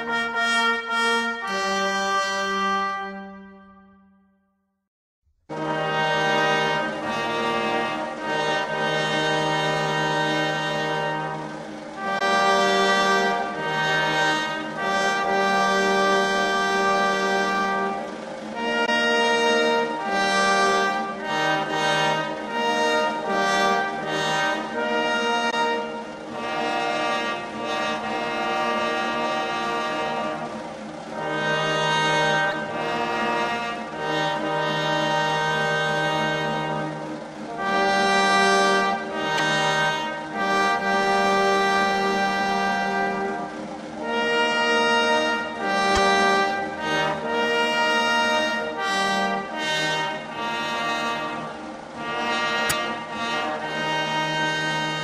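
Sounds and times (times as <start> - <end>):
slow brass chords: 0.0 - 4.3, 5.5 - 55.0.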